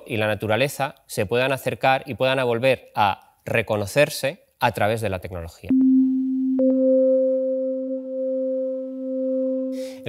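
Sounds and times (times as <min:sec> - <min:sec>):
higher synthesizer tone: 0:05.7 - 0:10.0
low synthesizer tone: 0:05.7 - 0:10.0.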